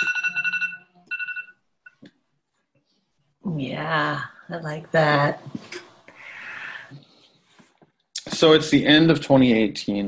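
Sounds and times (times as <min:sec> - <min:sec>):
electronic ringing tone: 0:00.0 - 0:02.0.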